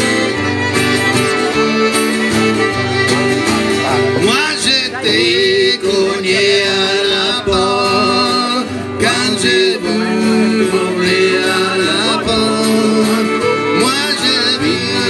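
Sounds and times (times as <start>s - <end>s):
button accordion melody: 0.0s - 15.0s
fiddle: 0.0s - 15.0s
strummed acoustic guitar: 0.0s - 15.0s.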